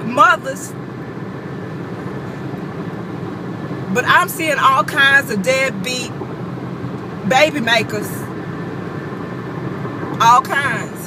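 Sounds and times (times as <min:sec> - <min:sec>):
car cabin rumble: 0:00.0 - 0:11.0
person speaking: 0:07.2 - 0:08.3.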